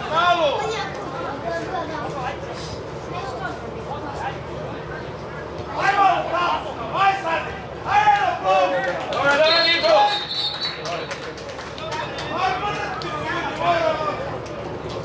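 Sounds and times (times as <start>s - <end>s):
referee's whistle blast: 9.4s - 11.0s.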